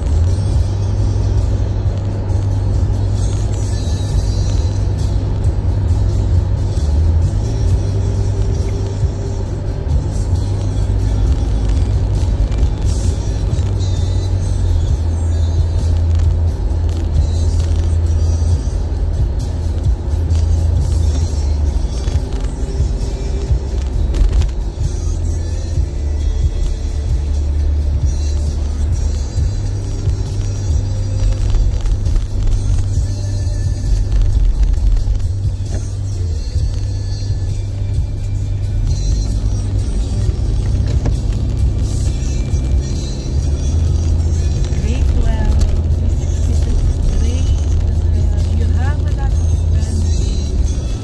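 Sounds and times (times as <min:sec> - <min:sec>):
car road and engine rumble: 0:00.0 - 0:51.0
music: 0:00.0 - 0:51.0.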